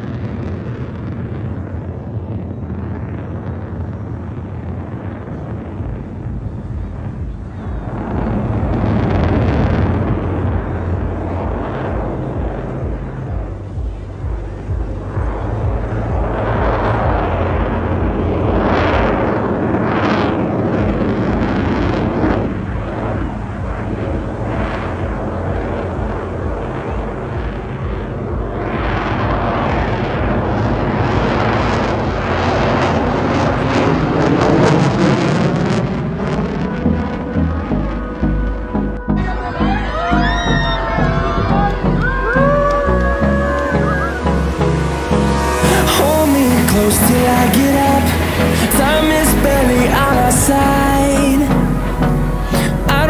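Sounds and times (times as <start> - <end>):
fighter jet engine roar: 0.0 - 53.0.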